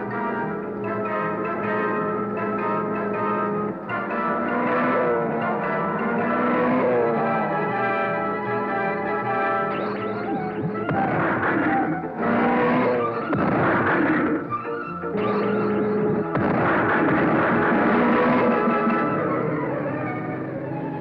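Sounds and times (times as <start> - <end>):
dramatic action music: 0.0 - 21.0
noisy blast effects: 9.7 - 19.5.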